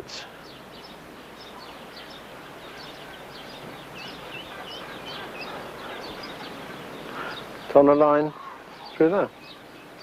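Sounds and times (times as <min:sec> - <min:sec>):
small birds chirping: 0:00.0 - 0:10.0
steady outdoor hiss: 0:00.0 - 0:10.0.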